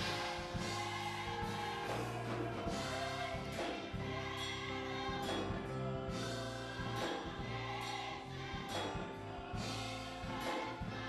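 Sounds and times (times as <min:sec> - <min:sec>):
band accompaniment: 0:00.0 - 0:11.0
drum or cymbal strokes: 0:00.0 - 0:11.0
gospel choir singing: 0:00.0 - 0:11.0.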